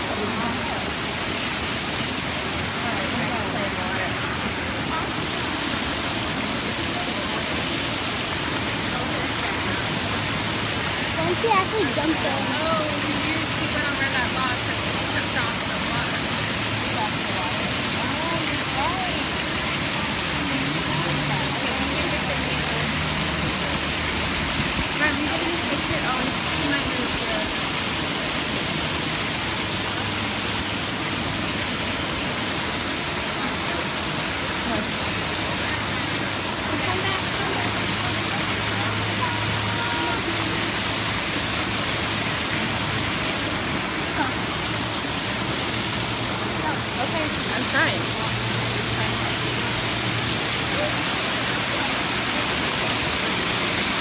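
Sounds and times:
people's voices murmuring: 0.0 - 54.0
waterfall pouring into pool: 0.0 - 54.0.

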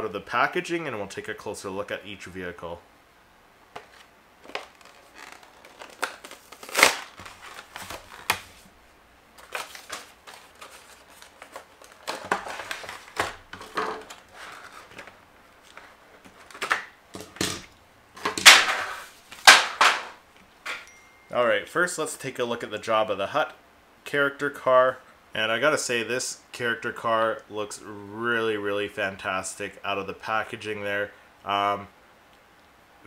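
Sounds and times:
plastic packaging crinkling and tearing: 3.8 - 8.7, 9.4 - 16.9.

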